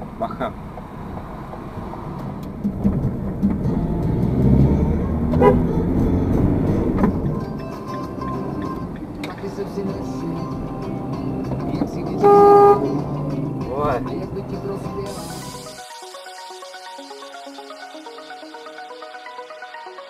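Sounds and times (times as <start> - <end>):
car horn blast: 5.3 - 5.8, 12.2 - 13.0.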